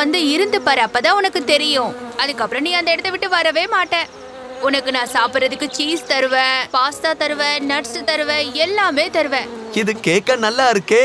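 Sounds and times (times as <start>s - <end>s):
cartoon flies buzzing: 0.0s - 10.9s.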